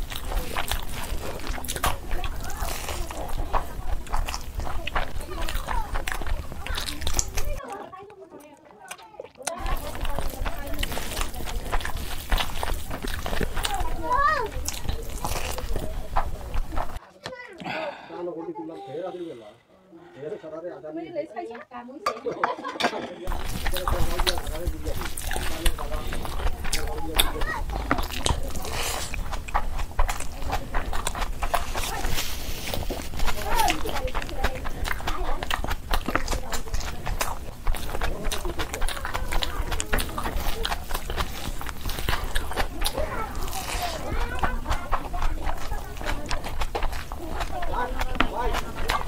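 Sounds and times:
wet chewing and lip-smacking: 0.0s - 17.7s, 23.3s - 49.0s.

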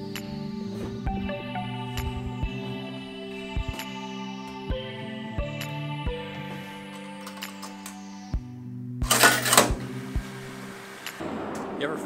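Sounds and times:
background music: 0.0s - 12.0s
coin slide click: 9.1s - 9.8s
coin slide clunk: 9.1s - 9.8s
metal coin slide scraping: 9.1s - 9.8s.

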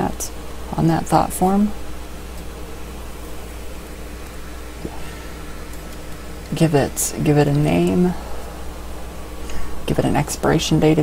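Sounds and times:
low electrical hum: 0.0s - 11.0s
steady hiss: 0.0s - 11.0s.

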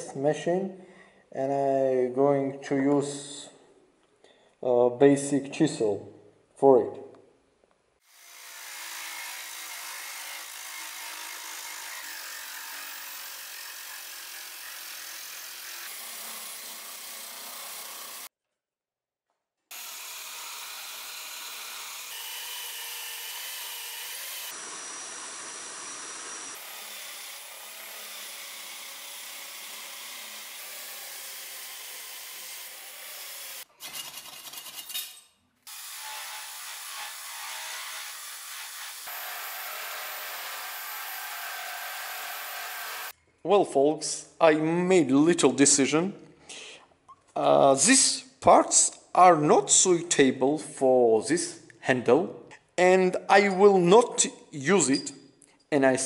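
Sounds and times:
drill motor whine: 23.2s - 26.6s.

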